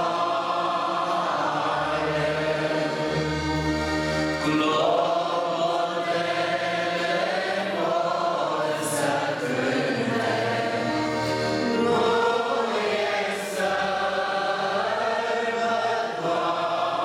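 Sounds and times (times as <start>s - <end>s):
choir singing a slow hymn: 0.0s - 17.0s.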